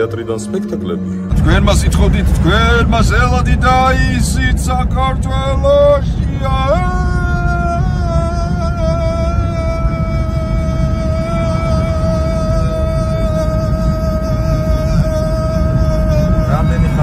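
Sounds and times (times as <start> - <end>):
man singing a long note: 0.5 - 17.0
road noise inside car: 1.3 - 17.0.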